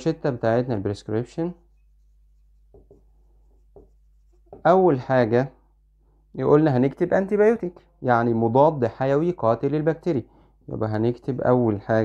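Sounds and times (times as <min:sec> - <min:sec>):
marker scratching on whiteboard: 0:01.5 - 0:05.0.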